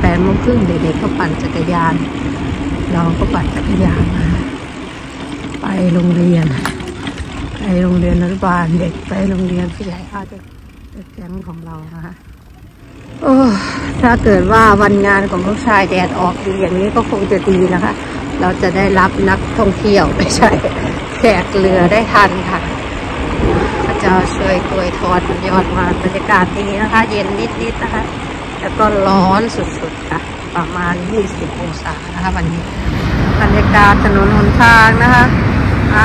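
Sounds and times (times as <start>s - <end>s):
woman talking: 0.0s - 2.1s, 2.8s - 4.6s, 5.6s - 6.8s, 7.6s - 12.2s, 13.2s - 22.8s, 23.4s - 32.7s, 33.3s - 36.0s
wind rushing over microphone: 19.0s - 30.5s, 31.5s - 36.0s.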